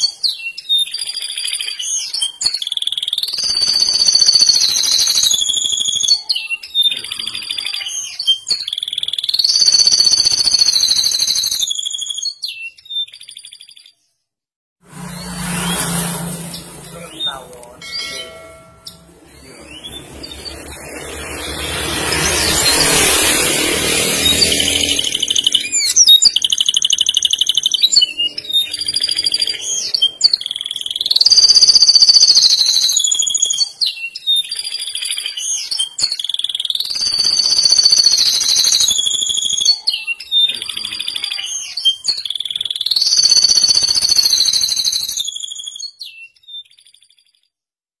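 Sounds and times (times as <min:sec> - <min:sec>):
canary singing high rolls: 0:00.0 - 0:13.8, 0:15.1 - 0:46.1
rushing noise: 0:14.8 - 0:26.0.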